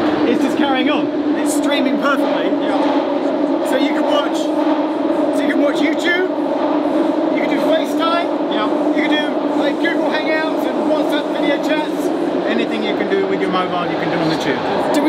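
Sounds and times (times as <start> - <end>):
tube train droning in tunnel: 0.0 - 15.0
people talking: 0.2 - 3.0, 3.6 - 4.5, 5.3 - 6.4, 7.3 - 15.0.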